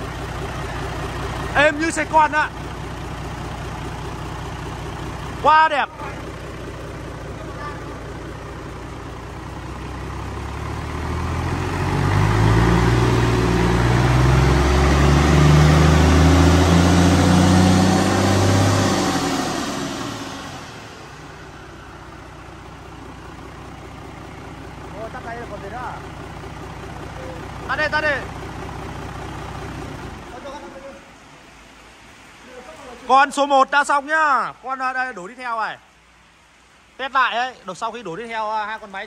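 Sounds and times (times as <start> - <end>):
diesel engine idling and revving: 0.0 - 34.2.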